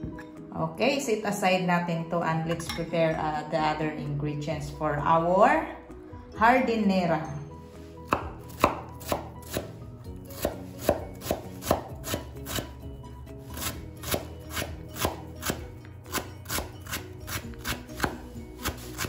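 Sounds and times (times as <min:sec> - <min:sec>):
knife chopping on wooden board: 0:08.1 - 0:09.7, 0:10.3 - 0:12.8, 0:13.5 - 0:19.0.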